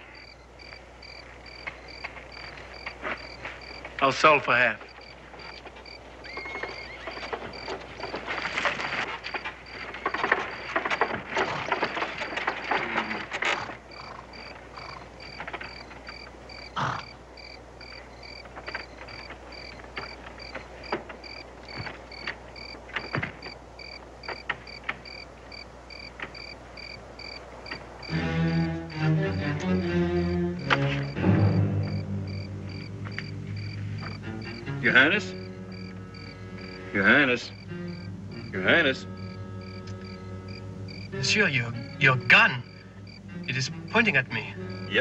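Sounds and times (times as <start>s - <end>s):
crackling rustling noise: 0.0s - 44.9s
crickets chirping: 0.0s - 45.0s.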